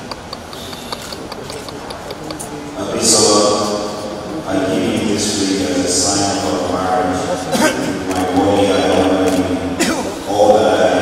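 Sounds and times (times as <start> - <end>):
camera shutters clicking: 0.2 - 2.5, 8.1 - 9.5.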